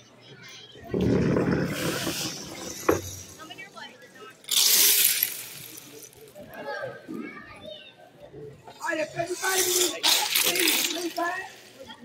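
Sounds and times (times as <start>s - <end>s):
people talking: 0.0s - 4.6s, 5.3s - 12.0s.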